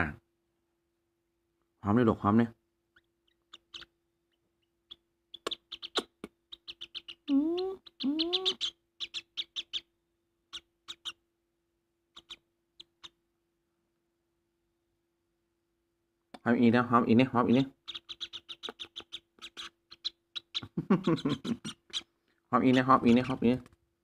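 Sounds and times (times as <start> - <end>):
bird chick chirping and clicking: 3.0 - 9.9, 10.5 - 11.2, 12.1 - 13.2, 17.4 - 22.1, 22.7 - 23.8
bird gliding calls: 4.9 - 9.8.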